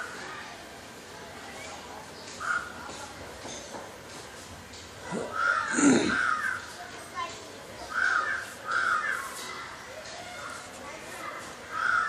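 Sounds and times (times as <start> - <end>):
crow cawing: 5.2 - 6.7, 7.9 - 9.6, 11.7 - 12.0.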